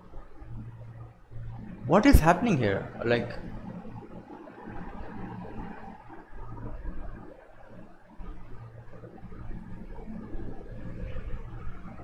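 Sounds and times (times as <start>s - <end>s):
low rumbling ambient drone: 0.0s - 12.0s.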